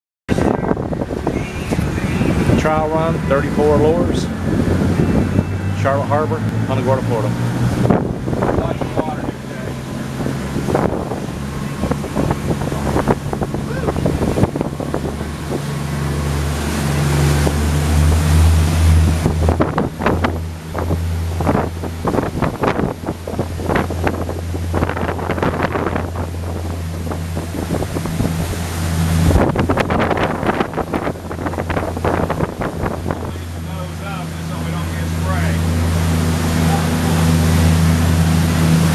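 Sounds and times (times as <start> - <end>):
boat engines rumbling: 0.3 - 38.9
wind buffeting microphone: 0.3 - 38.9.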